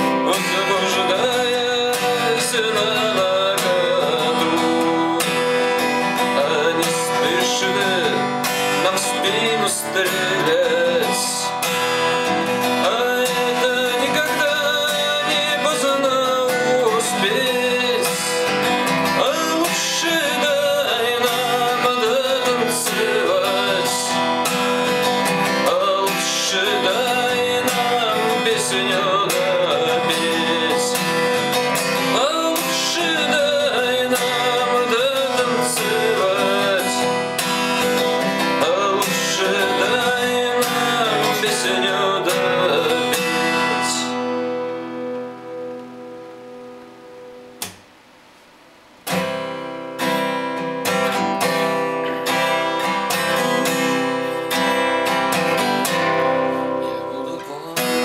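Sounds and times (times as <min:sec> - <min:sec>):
man singing: 0:00.0 - 0:45.2, 0:51.4 - 0:58.0
acoustic guitar strumming: 0:00.0 - 0:58.0
click: 0:47.6 - 0:47.8.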